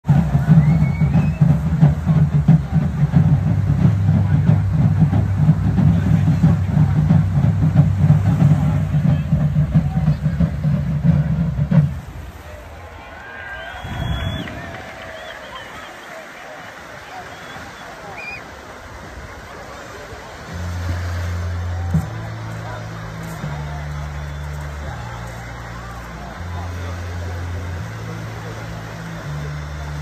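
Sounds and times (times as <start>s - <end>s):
wind buffeting microphone: 0.0s - 23.6s
background voices: 0.0s - 30.0s
distant calls: 0.1s - 19.6s.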